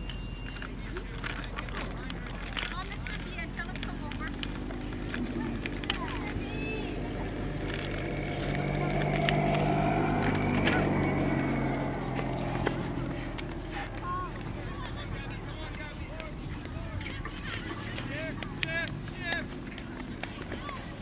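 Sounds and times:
vehicle engine passing: 0:02.6 - 0:21.0.

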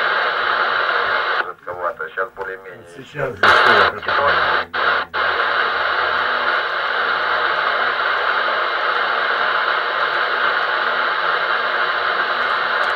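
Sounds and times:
radio static hiss: 0:00.0 - 0:12.9.

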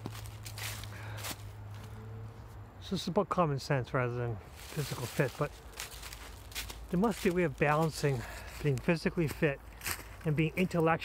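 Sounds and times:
footsteps crunching dry leaves: 0:00.0 - 0:02.0, 0:04.5 - 0:11.0.

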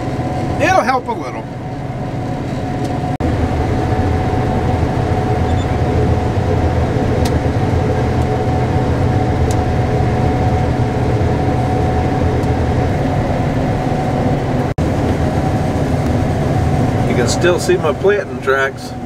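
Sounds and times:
combine harvester drone: 0:00.0 - 0:19.0
thin steady whine: 0:00.0 - 0:19.0.

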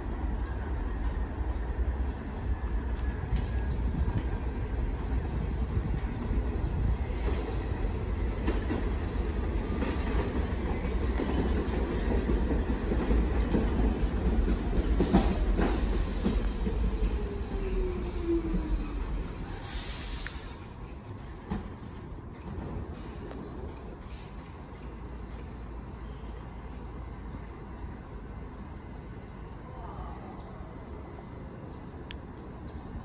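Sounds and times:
subway train rumbling: 0:00.0 - 0:33.0
air brake hiss: 0:14.9 - 0:16.5, 0:19.6 - 0:20.6.

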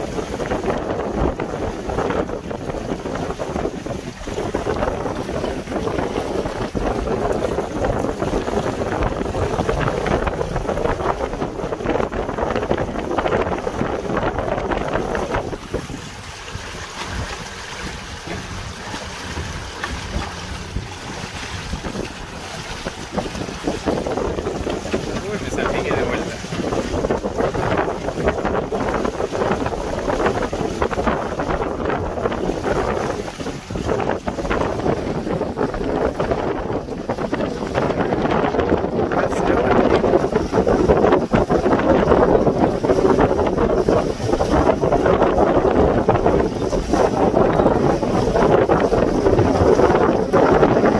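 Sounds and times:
choppy water slapping hull: 0:00.0 - 0:50.9
strong wind buffeting microphone: 0:00.0 - 0:50.9.

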